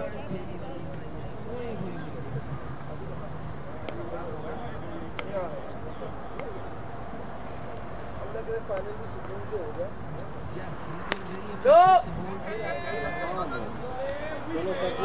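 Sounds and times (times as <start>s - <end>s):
distant voices chattering: 0.0s - 15.0s.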